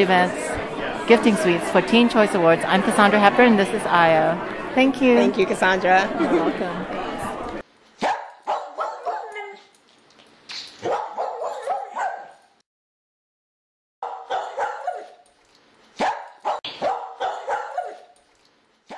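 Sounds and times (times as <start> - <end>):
animal yapping: 8.0 - 9.7, 10.8 - 12.4, 14.0 - 15.2, 16.0 - 18.2.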